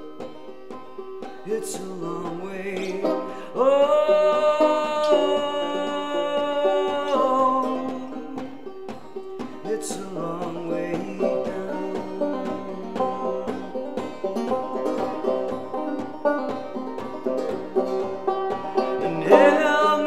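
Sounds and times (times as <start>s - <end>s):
banjo picking: 0.0s - 20.0s.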